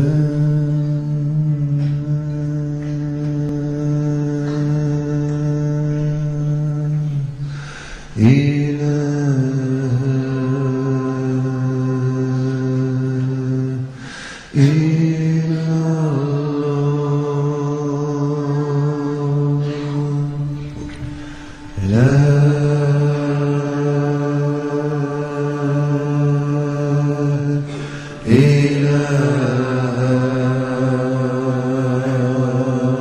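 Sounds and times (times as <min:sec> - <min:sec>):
deep low-pitched chanting: 0:00.0 - 0:33.0.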